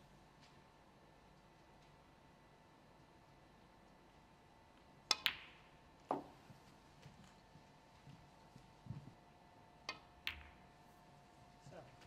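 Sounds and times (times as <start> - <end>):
faint steady hum: 0.0 - 12.0
snooker balls clicking: 5.1 - 6.4, 9.8 - 10.7.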